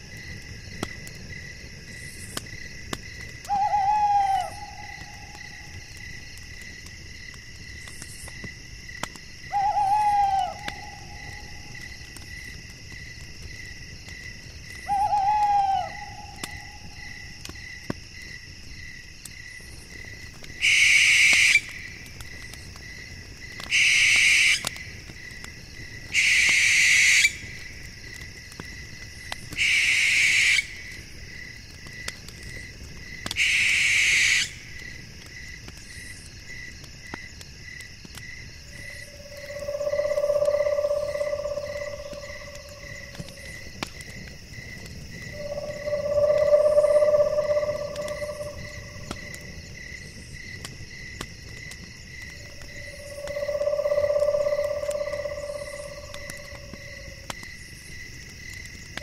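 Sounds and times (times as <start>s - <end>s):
crickets chirping: 0.0s - 59.0s
owl screeching: 3.5s - 4.9s, 9.5s - 11.0s, 14.9s - 16.4s, 23.7s - 24.6s, 26.2s - 27.4s, 33.4s - 34.6s, 39.3s - 43.5s, 45.4s - 49.1s, 53.0s - 56.4s
owl hooting: 3.5s - 5.3s, 9.5s - 11.6s, 14.9s - 16.8s, 23.7s - 24.6s, 26.2s - 27.4s, 29.6s - 30.8s, 33.4s - 34.6s, 39.1s - 43.6s, 45.3s - 49.3s, 52.9s - 56.7s.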